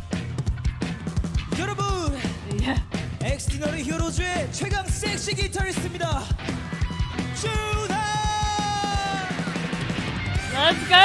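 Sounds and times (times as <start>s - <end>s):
drums hitting: 0.0s - 11.0s
live rock band: 0.0s - 11.0s
person singing: 7.4s - 9.5s.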